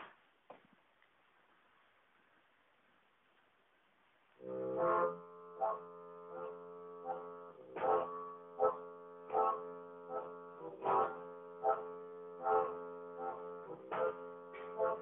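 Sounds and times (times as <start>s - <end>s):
droning chord over steady beat: 4.4s - 15.0s.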